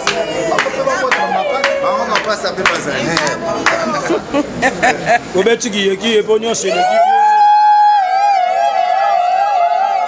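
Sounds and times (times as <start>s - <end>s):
woman ululating: 6.7s - 10.0s.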